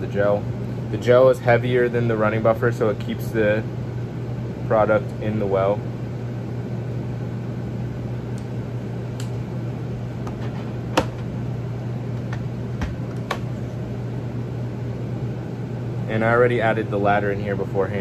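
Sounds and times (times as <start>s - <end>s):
low mechanical hum: 0.0s - 18.0s
micropipette clicks: 9.1s - 9.4s.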